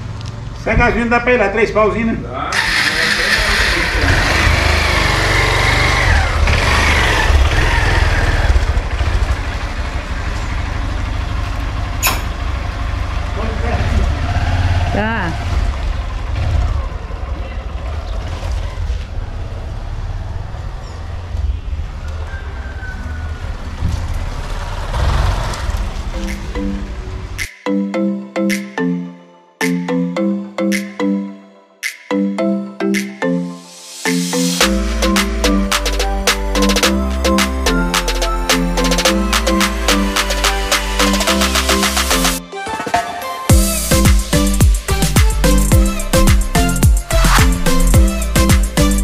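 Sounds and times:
motorcycle engine running: 0:02.6 - 0:20.4.

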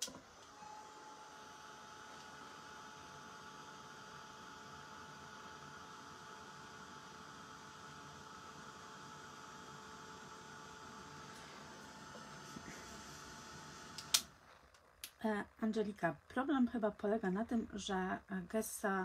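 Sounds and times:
heat gun fan hum and whine: 0:00.0 - 0:19.0.

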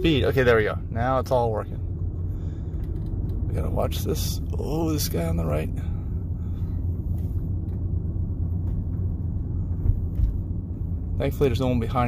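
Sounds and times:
road rumble inside car: 0:00.0 - 0:12.0.

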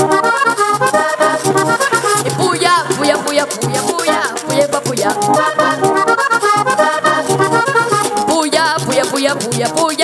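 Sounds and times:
button accordion playing: 0:00.0 - 0:10.0
percussion fast beat: 0:00.0 - 0:10.0.

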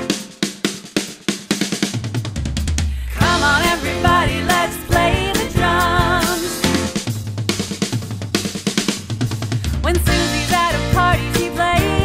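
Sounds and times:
snare and tom drum fill: 0:00.0 - 0:12.0.

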